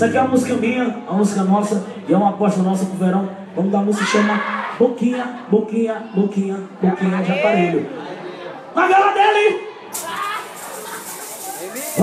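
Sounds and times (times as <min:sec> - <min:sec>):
steady hiss: 0:10.0 - 0:12.0.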